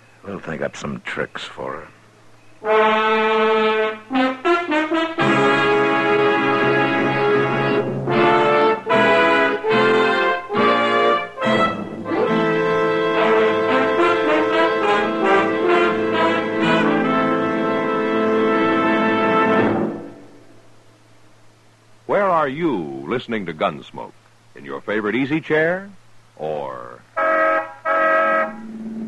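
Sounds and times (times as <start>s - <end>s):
brass-led orchestral chords: 2.6s - 20.4s, 27.2s - 29.0s.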